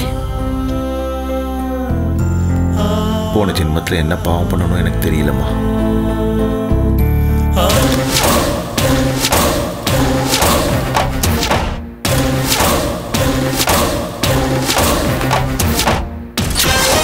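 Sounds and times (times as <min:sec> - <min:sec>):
dramatic music with heavy drum hits: 0:07.7 - 0:17.0.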